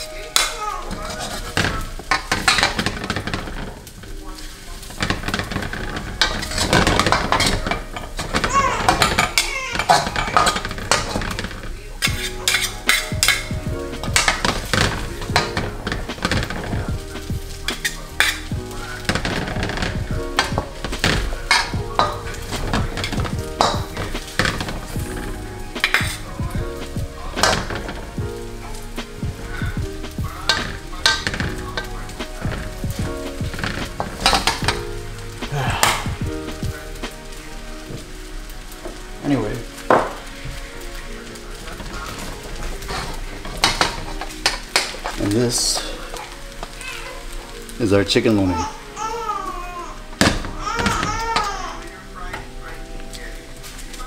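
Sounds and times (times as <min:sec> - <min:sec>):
metal ladles scraping and clinking: 0:00.0 - 0:49.0
noodles sizzling in a wok: 0:00.0 - 0:54.0.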